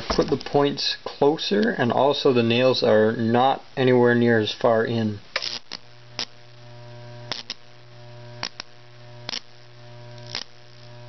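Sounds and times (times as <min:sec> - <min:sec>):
electric arcing crackles: 0:01.5 - 0:11.0.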